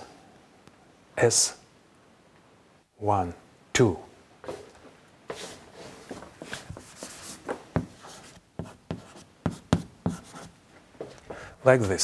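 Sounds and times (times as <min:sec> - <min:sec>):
chalk tapping and scratching: 0:05.3 - 0:11.2.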